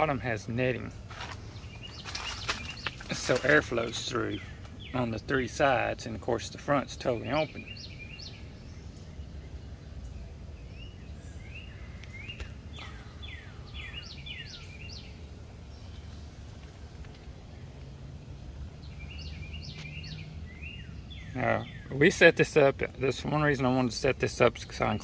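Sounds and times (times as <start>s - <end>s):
low outdoor rumble: 0.0s - 25.0s
small birds chirping: 0.0s - 25.0s.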